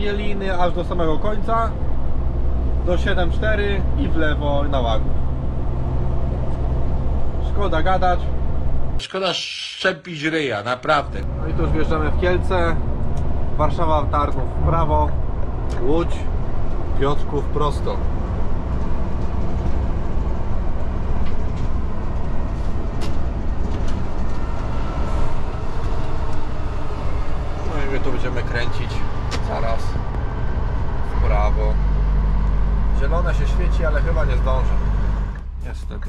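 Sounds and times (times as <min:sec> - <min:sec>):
deep steady drone: 0:00.0 - 0:09.0, 0:10.9 - 0:36.0
truck diesel engine in cab: 0:00.0 - 0:09.0, 0:10.9 - 0:36.0
road noise: 0:00.0 - 0:09.6, 0:10.4 - 0:36.0.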